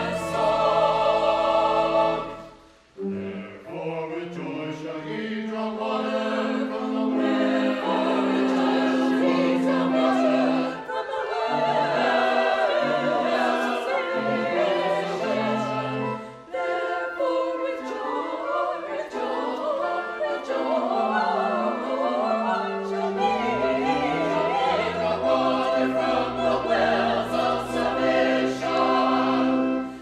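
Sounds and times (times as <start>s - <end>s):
choir singing: 0.0s - 30.0s.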